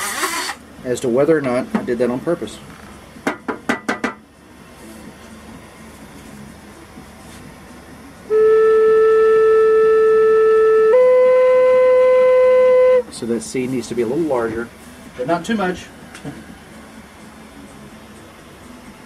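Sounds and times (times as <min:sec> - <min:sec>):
flute playing held note: 0:08.3 - 0:13.1.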